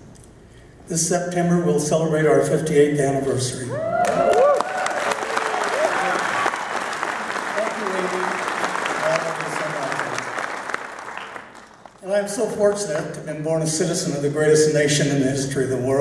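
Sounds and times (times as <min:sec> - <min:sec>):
crowd whoops and calls: 0:03.7 - 0:07.3
audience applauding: 0:04.0 - 0:12.0.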